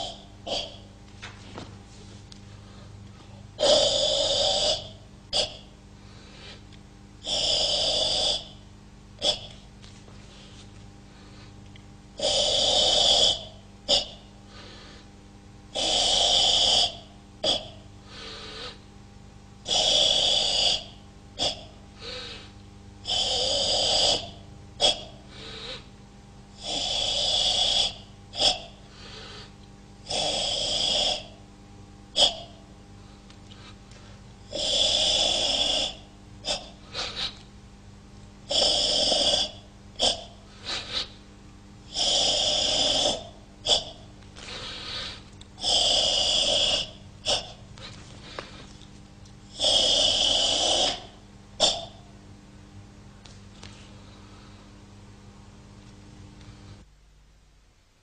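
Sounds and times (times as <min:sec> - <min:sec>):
forceful hissing breaths: 0:00.0 - 0:00.9, 0:02.5 - 0:08.6, 0:12.2 - 0:15.1, 0:15.8 - 0:18.9, 0:19.6 - 0:26.0, 0:26.6 - 0:31.4, 0:32.2 - 0:37.4, 0:38.5 - 0:41.3, 0:41.9 - 0:48.9, 0:49.5 - 0:52.1.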